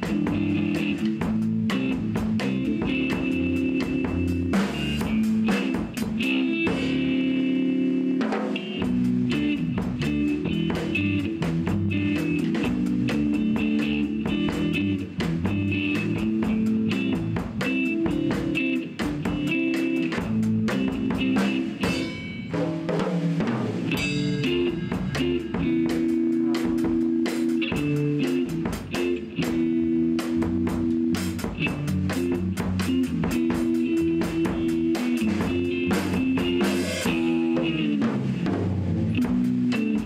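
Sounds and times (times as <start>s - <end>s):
bass guitar: 0.0s - 40.0s
drum kit steady beat: 0.0s - 40.0s
electric guitar: 0.0s - 40.0s.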